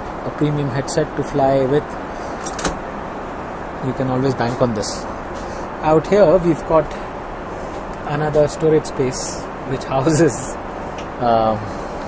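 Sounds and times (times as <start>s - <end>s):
airplane cabin noise: 0.0s - 12.0s.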